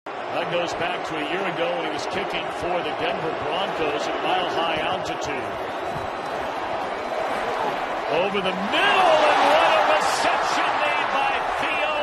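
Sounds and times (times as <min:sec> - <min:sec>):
stadium crowd din: 0:00.1 - 0:12.0.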